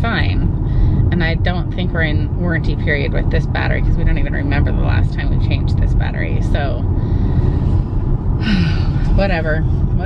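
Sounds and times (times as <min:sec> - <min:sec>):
road and tyre rumble: 0:00.0 - 0:10.0
breathy sigh: 0:07.0 - 0:09.1.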